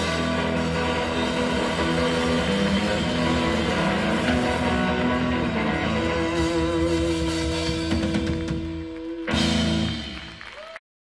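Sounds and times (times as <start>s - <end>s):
electric bass: 0.0s - 10.5s
drum kit: 0.0s - 10.8s
electric guitar: 0.0s - 10.8s.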